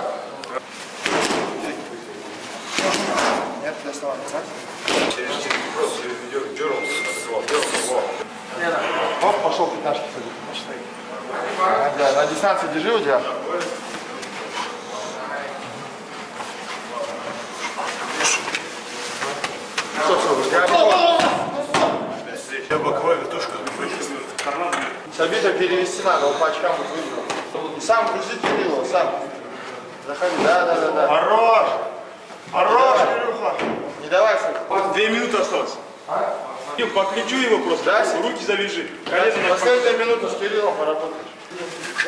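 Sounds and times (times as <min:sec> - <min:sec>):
men talking indistinctly: 0:00.0 - 0:42.0.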